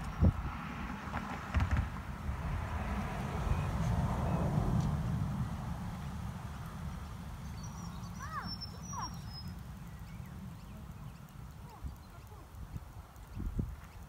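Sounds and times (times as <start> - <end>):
wind rumbling on microphone: 0.0 - 14.0
birds chirping: 6.6 - 14.0.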